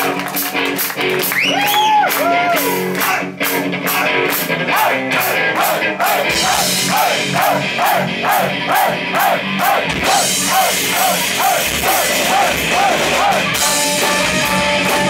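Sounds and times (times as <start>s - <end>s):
rock band playing: 0.0s - 15.0s.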